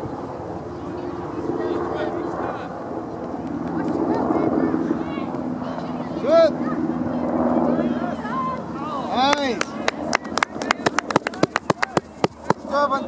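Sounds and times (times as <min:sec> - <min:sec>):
sharp hand claps: 0:09.3 - 0:12.6.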